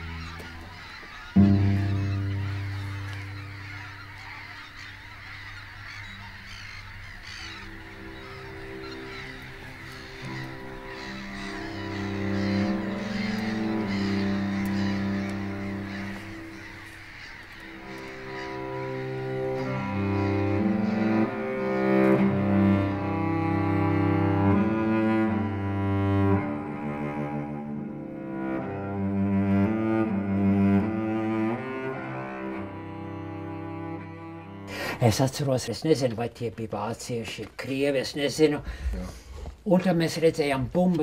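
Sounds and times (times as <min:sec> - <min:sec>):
slow music of low chords: 0:00.0 - 0:35.1
geese honking in flight: 0:00.0 - 0:35.4.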